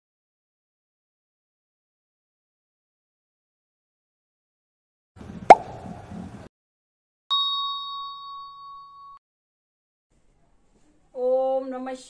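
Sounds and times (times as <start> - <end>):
sharp pop: 5.5 - 5.8
bell-like ding: 7.3 - 9.2.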